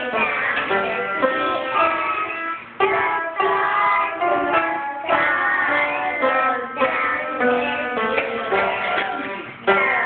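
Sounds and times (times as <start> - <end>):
children singing into microphones: 0.0 - 10.0.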